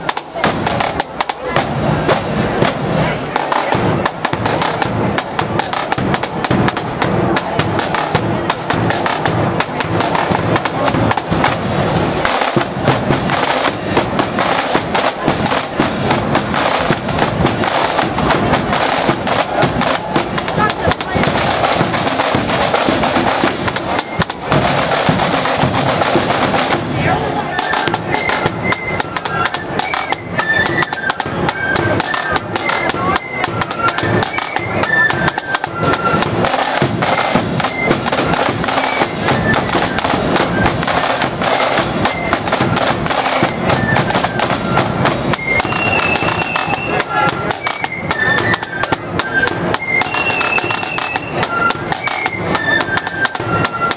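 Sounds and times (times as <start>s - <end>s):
snare drums rattling: 0.0s - 53.9s.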